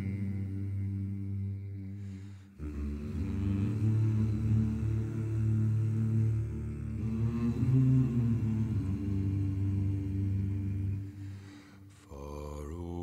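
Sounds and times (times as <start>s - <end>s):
men humming in unison: 0.0s - 11.4s.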